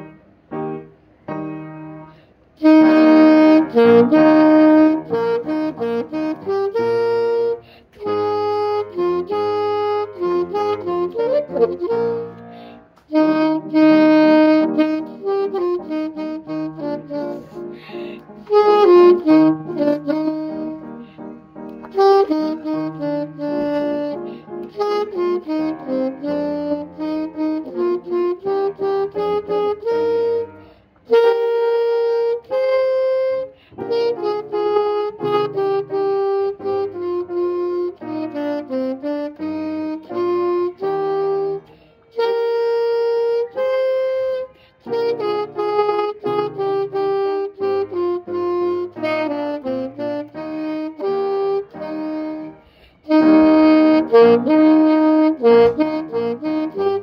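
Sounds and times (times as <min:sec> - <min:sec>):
saxophone melody: 0:00.0 - 0:00.2, 0:02.0 - 0:57.0.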